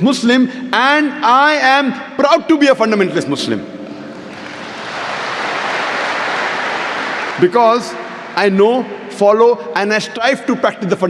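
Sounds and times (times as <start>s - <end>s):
large audience applauding: 4.3s - 8.4s.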